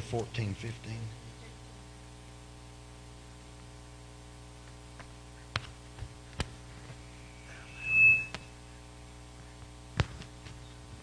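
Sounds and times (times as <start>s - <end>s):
steady electrical hum: 0.0s - 11.0s
high pure tone: 7.0s - 8.6s.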